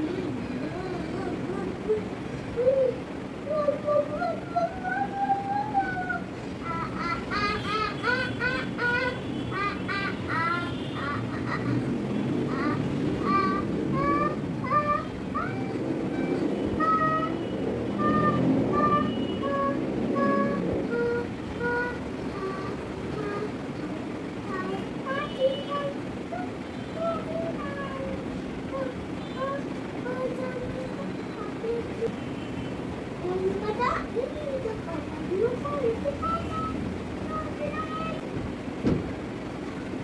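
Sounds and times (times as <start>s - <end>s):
low rumbling background noise: 0.0s - 40.0s
steady background noise: 0.0s - 40.0s
child talking: 24.5s - 32.1s, 33.2s - 38.4s.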